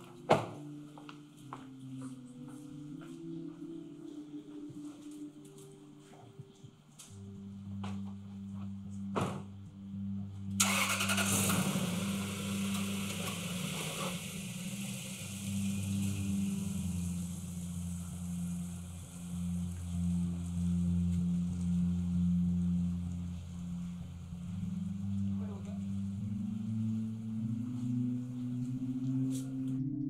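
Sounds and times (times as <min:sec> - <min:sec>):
car engine starting: 0:09.2 - 0:29.6
car engine running: 0:10.6 - 0:28.7.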